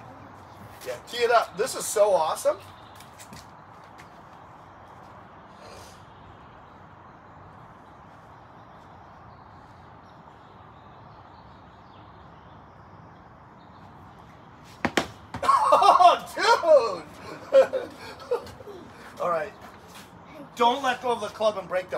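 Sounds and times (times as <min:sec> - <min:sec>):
outdoor background noise: 0:00.0 - 0:21.9.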